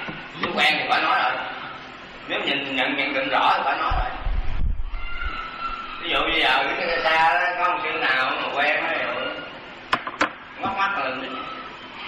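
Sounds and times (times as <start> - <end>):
low rumble on handheld microphone: 3.7 - 7.3.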